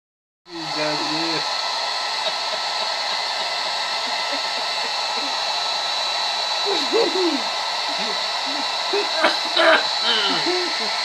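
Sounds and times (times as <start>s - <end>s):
person's voice: 0.5s - 1.5s, 6.6s - 11.0s
hair dryer blowing: 0.5s - 11.0s.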